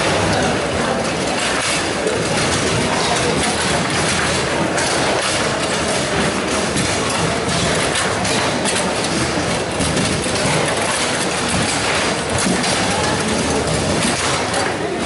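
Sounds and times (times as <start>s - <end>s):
background din of play: 0.0s - 15.0s
steel rods rattling: 0.0s - 15.0s.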